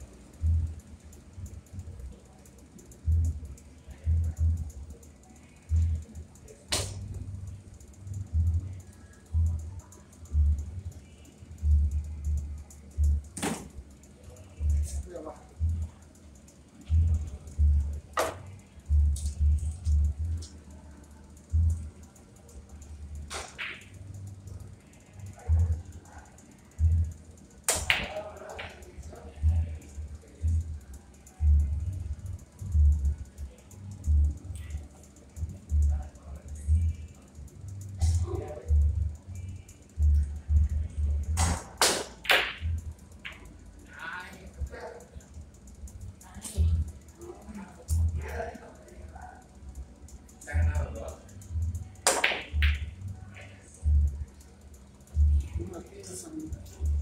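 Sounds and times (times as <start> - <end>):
billiard balls clacking: 41.4 - 43.4, 52.1 - 53.0.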